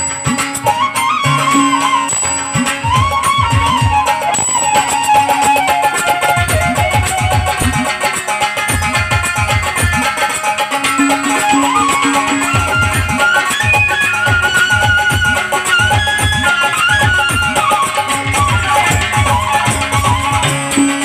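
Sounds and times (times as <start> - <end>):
bamboo flute: 0.0 - 8.1, 10.8 - 21.0
keyboard melody: 0.0 - 21.0.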